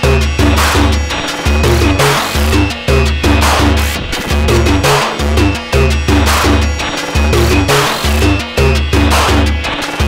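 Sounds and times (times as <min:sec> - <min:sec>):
heavy synth bass notes: 0:00.0 - 0:10.0
noisy percussive hits and sweeps: 0:00.0 - 0:10.0.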